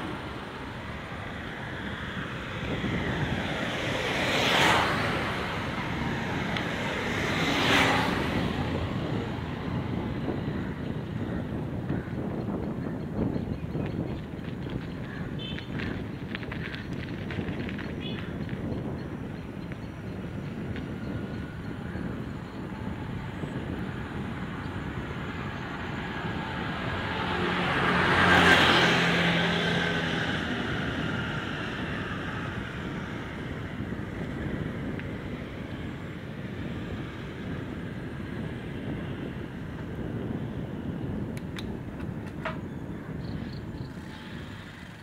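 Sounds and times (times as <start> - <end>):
vehicle passing: 0.0 - 11.1, 15.4 - 40.0
bicycle rolling and wind noise: 0.0 - 45.0.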